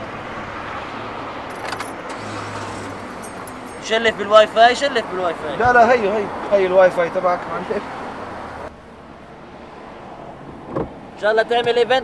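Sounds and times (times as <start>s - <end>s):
car and road noise: 0.0s - 12.0s
jingle of small metal clicks: 3.2s - 3.9s.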